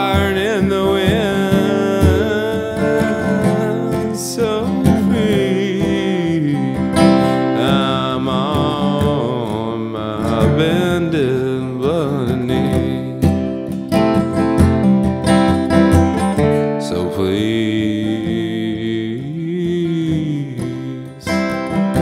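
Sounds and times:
man singing: 0:00.0 - 0:14.1, 0:16.6 - 0:22.0
acoustic guitar strumming: 0:00.0 - 0:22.0.

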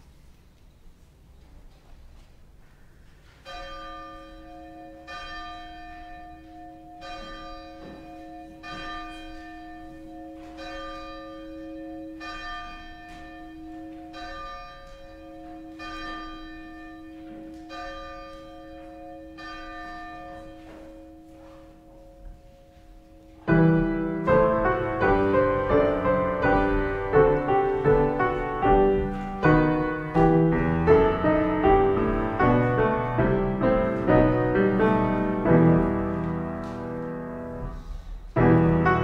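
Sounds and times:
church bell tolling: 0:03.4 - 0:39.0.

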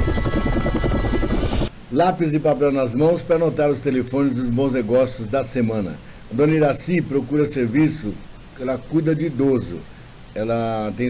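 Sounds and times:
helicopter rotor chopping: 0:00.0 - 0:01.7.

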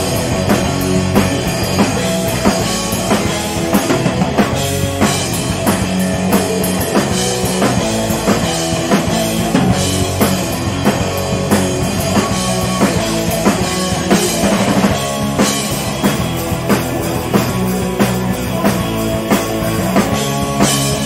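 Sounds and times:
bass guitar: 0:00.0 - 0:21.0
drum kit beat: 0:00.0 - 0:21.0
electric guitars: 0:00.0 - 0:21.0.

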